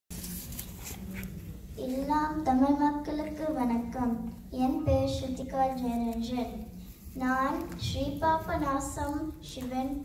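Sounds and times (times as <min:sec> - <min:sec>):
girl speaking into a microphone: 0:01.7 - 0:10.0.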